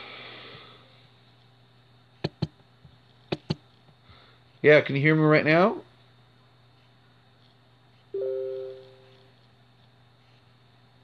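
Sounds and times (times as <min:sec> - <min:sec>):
two-note electronic chime: 0:08.2 - 0:09.0.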